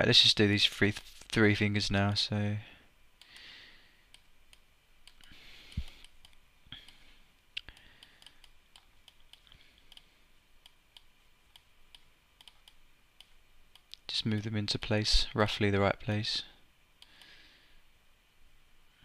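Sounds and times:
computer mouse clicks: 4.1 - 7.0, 7.6 - 14.0.

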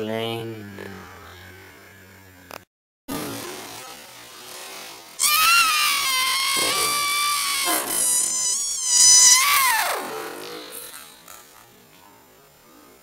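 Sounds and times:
person screeching high note: 5.2 - 11.2.

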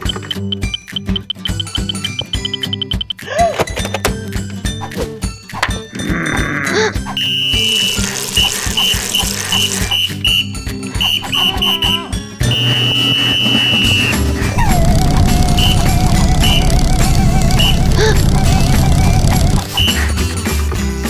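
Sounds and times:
cartoon music: 0.0 - 3.8, 4.7 - 20.3
coach's whistle blasts and toots: 7.1 - 8.0, 8.8 - 18.0.

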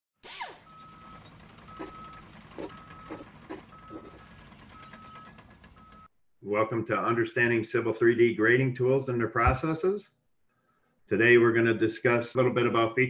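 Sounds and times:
electronic beep: 0.7 - 4.2.

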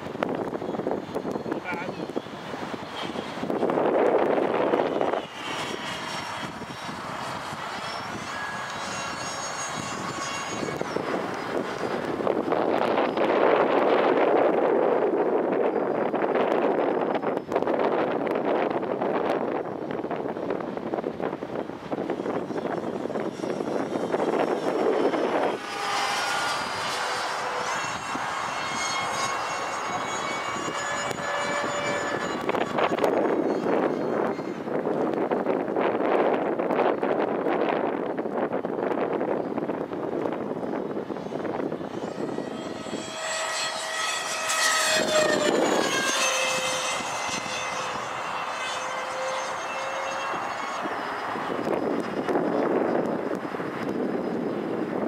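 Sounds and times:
model jet fans whining: 0.0 - 55.0.

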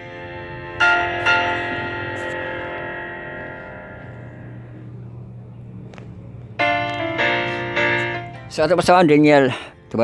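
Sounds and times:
bell-like strikes: 0.0 - 8.5
sustained steady tones: 0.0 - 10.0.

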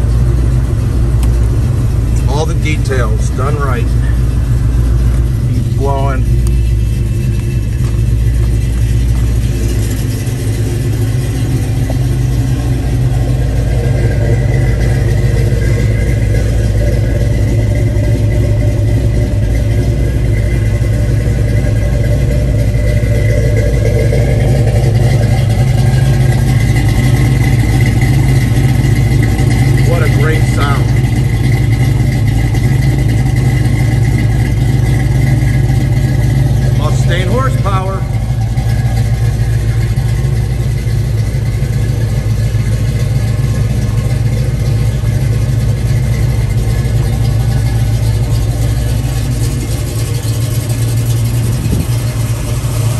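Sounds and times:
car engine idling: 0.0 - 52.9.

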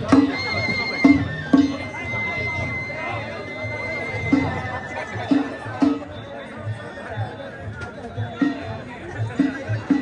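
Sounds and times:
taiko drumming: 0.0 - 3.6
crowd chatter: 0.0 - 10.0.

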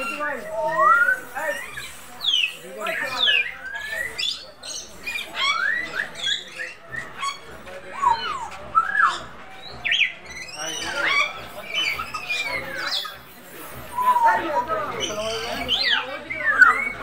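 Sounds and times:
parrots squawking and whistling: 0.0 - 17.0.

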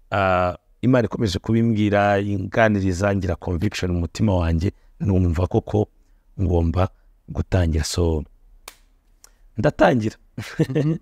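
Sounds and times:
man speaking: 0.1 - 8.3, 9.6 - 11.0
sharp click: 8.6 - 9.4.

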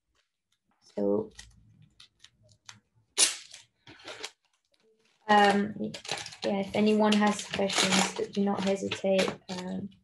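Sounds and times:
adhesive tape ripping: 3.2 - 4.6.

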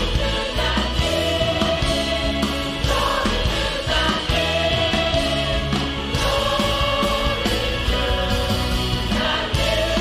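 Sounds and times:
choir singing: 0.0 - 10.0
drum kit: 0.0 - 10.0.

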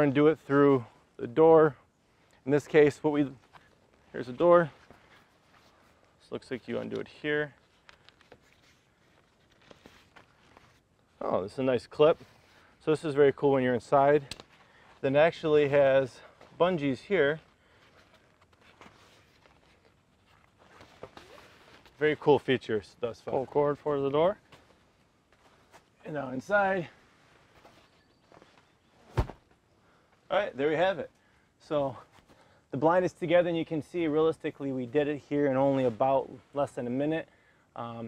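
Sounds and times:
fabric handling: 2.6 - 29.7
faint fastening clicks: 6.8 - 10.8, 14.2 - 15.0.

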